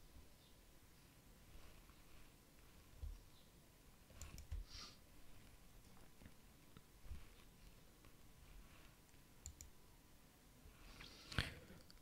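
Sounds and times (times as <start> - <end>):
computer mouse clicks: 4.1 - 4.7, 9.1 - 9.8.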